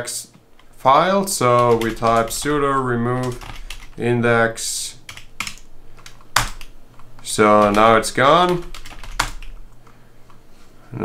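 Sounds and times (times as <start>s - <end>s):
computer keyboard keys clicking: 1.6s - 4.0s, 5.1s - 10.4s.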